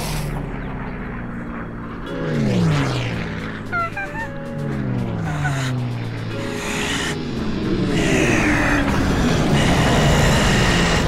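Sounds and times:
cartoon character yelp: 3.7s - 4.4s.

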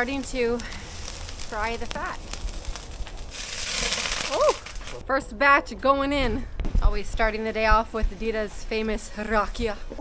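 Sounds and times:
pork fat sizzling and crackling: 0.0s - 5.0s.

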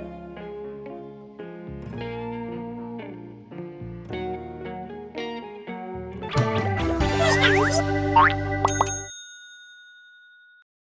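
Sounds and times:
cartoonish logo jingle: 7.1s - 9.1s
quick dings: 8.7s - 10.6s.

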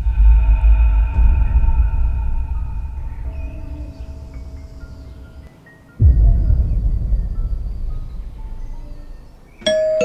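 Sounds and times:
low rumbling drone: 0.0s - 9.6s.

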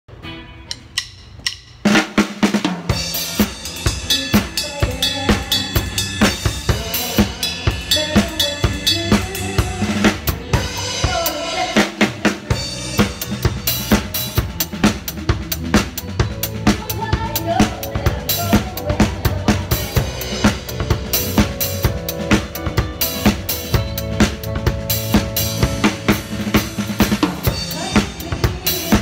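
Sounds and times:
drum kit groove: 0.1s - 29.0s.

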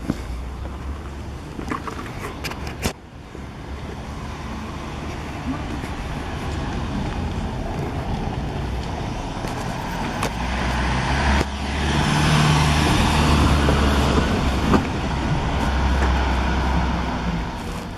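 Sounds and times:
street noise: 0.0s - 17.9s.

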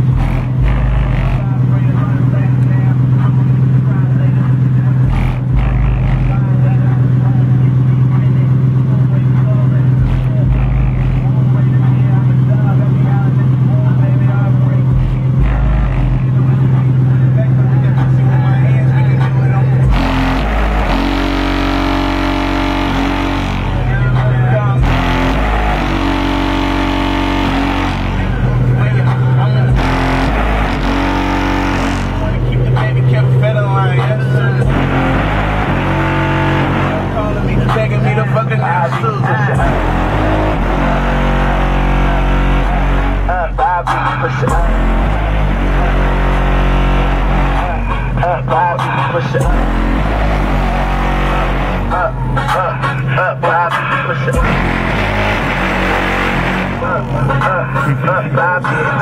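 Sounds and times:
bass-heavy music from subwoofers: 0.0s - 59.0s.

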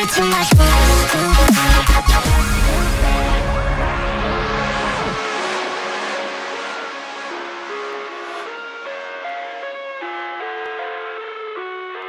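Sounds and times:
electronic dance music: 0.0s - 10.1s
stepped synth notes: 0.0s - 12.0s
bass downward sweep: 0.5s - 8.5s
whooshing noise sweep: 2.0s - 8.5s.

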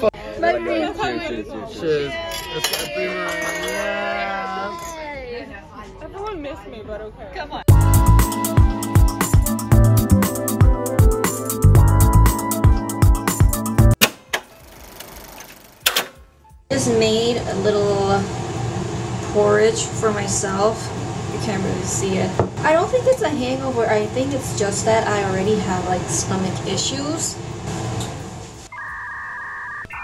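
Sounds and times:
two-tone electronic beep: 28.7s - 30.0s.

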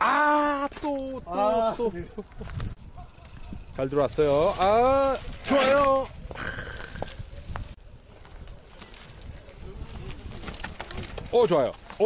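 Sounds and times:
wind rumble on microphone: 1.1s - 11.4s.

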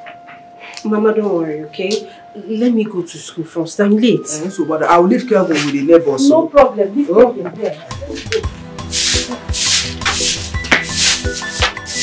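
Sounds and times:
background music: 1.4s - 12.0s
broom sweeping floor: 8.2s - 12.0s.

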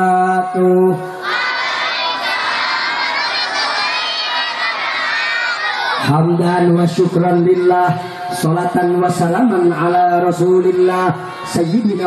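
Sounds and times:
children shouting together: 1.2s - 6.1s.

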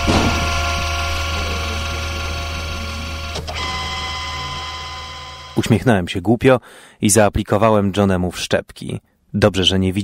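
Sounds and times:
electronic ambient drone: 0.0s - 5.8s.

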